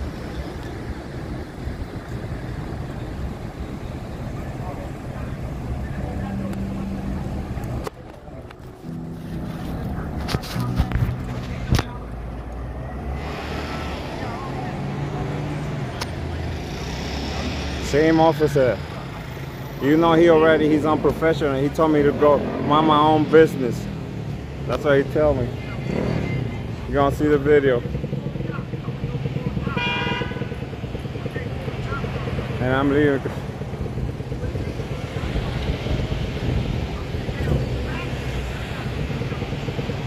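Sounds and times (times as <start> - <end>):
low engine hum: 0.0 - 16.5
faint distant voices: 0.0 - 24.0
vehicle engine running: 0.0 - 40.0
car horn toot: 29.6 - 30.6.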